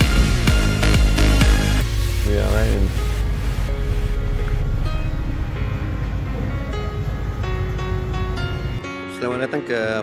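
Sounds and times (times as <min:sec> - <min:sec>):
wavering bending synth line: 0:01.8 - 0:08.8.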